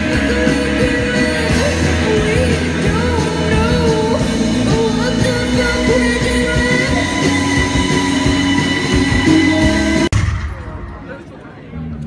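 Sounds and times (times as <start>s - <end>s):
person singing: 0.0s - 10.1s
electric guitar: 0.0s - 11.2s
bass: 0.0s - 12.0s.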